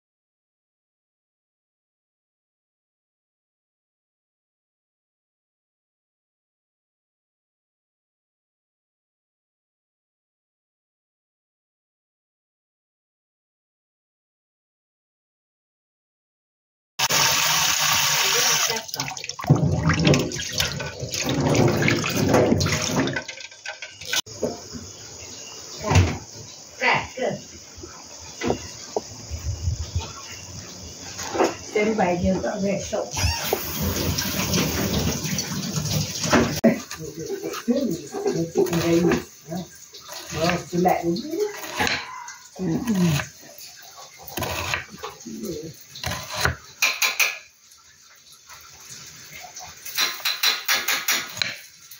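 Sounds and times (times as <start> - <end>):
tap water running into bowl: 17.0 - 24.5, 33.2 - 51.9
water splashing: 17.2 - 24.3, 33.2 - 51.9
person's voice: 36.6 - 39.7.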